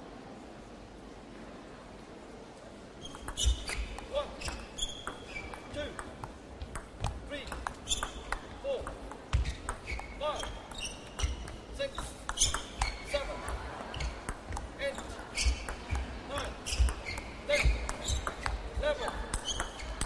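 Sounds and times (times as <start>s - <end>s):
shoes squeaking on floor: 3.0s - 6.0s, 6.6s - 20.0s
ping pong ball clicking: 3.1s - 20.0s.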